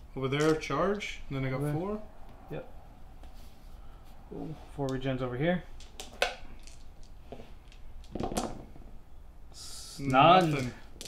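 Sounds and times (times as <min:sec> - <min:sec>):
dice rattling: 0:00.4 - 0:00.6, 0:05.8 - 0:08.9.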